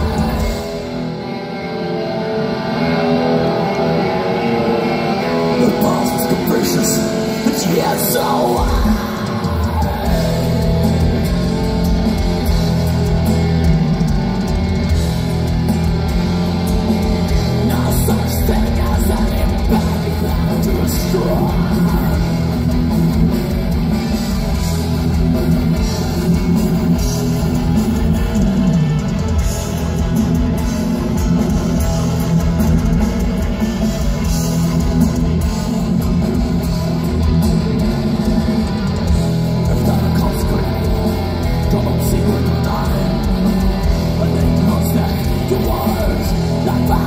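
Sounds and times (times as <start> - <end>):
bass guitar: 0.0 - 47.0
distorted electric guitars: 0.0 - 47.0
drums: 0.0 - 47.0.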